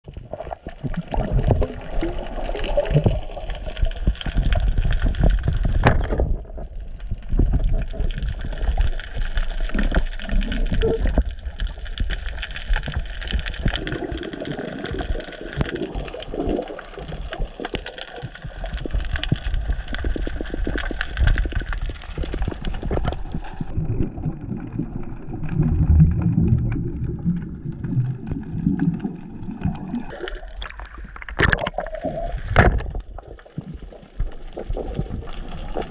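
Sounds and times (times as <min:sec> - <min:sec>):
underwater low rumble: 0:00.1 - 0:35.9.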